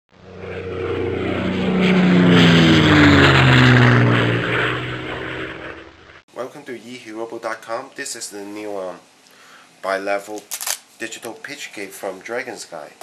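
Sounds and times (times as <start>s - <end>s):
airplane flying by: 0.1s - 6.2s.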